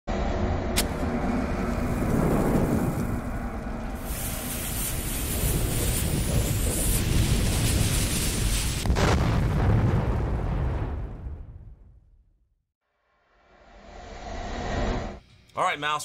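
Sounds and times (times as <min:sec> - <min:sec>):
steady low rumble: 0:00.1 - 0:11.4
hissing rush of flames: 0:00.8 - 0:11.2.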